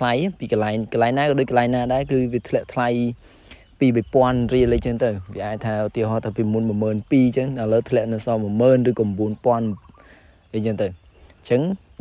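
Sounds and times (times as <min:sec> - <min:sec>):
man speaking: 0:00.0 - 0:09.9, 0:10.5 - 0:12.0.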